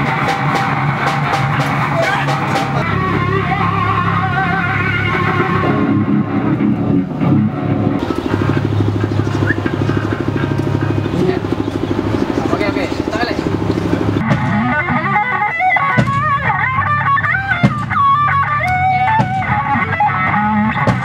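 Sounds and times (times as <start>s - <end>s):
heavy metal music: 0.0s - 21.0s.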